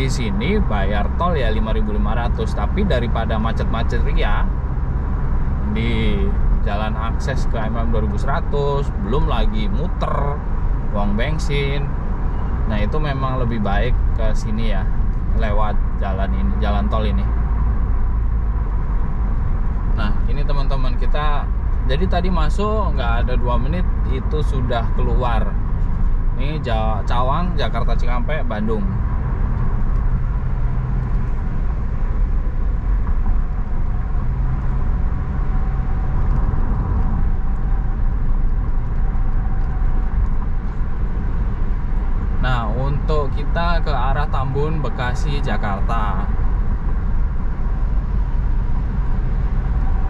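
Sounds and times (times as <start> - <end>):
car tyre and road noise: 0.0 - 50.0.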